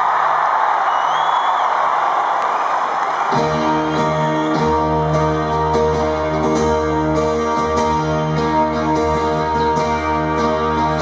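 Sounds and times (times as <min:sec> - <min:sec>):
arena crowd cheering and screaming: 0:00.0 - 0:11.0.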